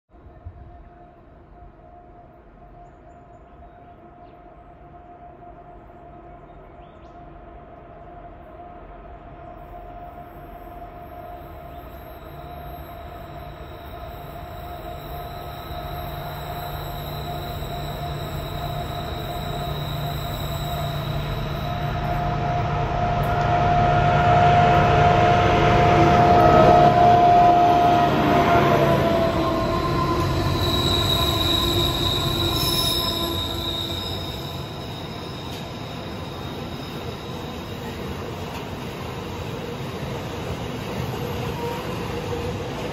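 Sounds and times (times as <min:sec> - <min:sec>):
diesel locomotive engines: 0:00.2 - 0:42.9
wheels squealing on curve: 0:11.8 - 0:22.9, 0:23.6 - 0:38.3.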